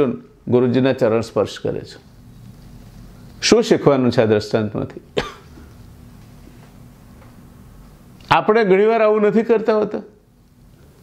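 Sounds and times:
low room tone hum: 0:00.0 - 0:11.0
man coughing: 0:05.2 - 0:05.6.

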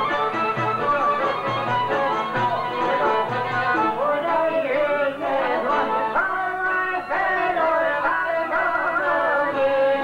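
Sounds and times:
violin melody: 0:00.0 - 0:04.2
two-stringed lute: 0:00.0 - 0:06.2
man singing: 0:02.9 - 0:10.0.

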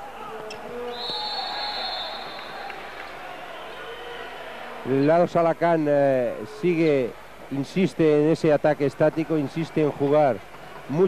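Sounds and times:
crowd chatter in a hall: 0:00.0 - 0:11.0
referee's whistle: 0:00.8 - 0:02.7.

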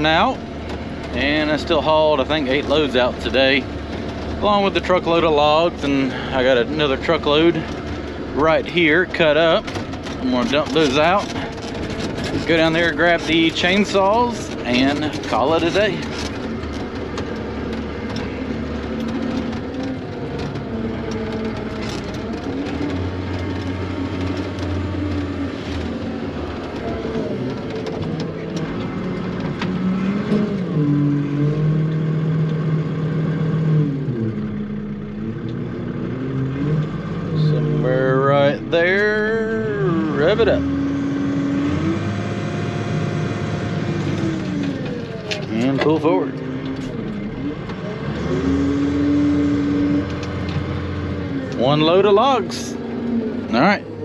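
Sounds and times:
dump truck engine revving: 0:00.0 - 0:54.0.

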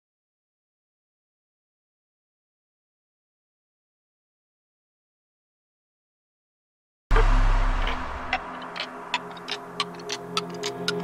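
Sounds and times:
clock-like ticks: 0:07.1 - 0:11.0
low drone: 0:07.1 - 0:11.0.

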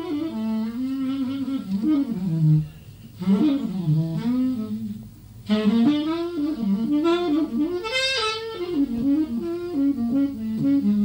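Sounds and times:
tenor saxophone playing: 0:00.0 - 0:11.0.

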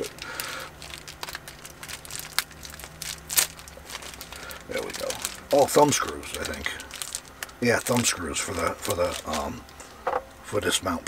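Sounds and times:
plastic bag crinkling: 0:00.0 - 0:09.9.

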